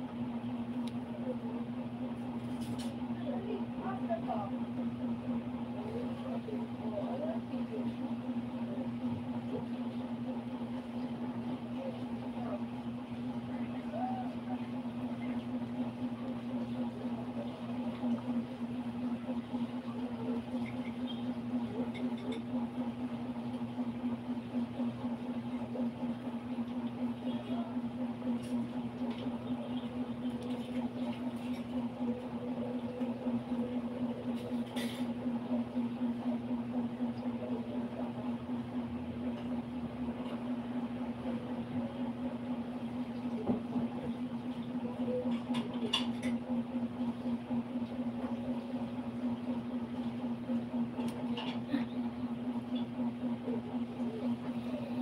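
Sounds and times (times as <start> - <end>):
low hum: 0.0 - 55.0.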